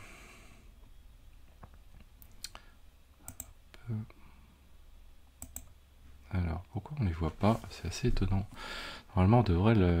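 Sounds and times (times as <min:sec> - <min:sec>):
computer mouse clicks: 0:03.3 - 0:03.6, 0:05.4 - 0:05.8.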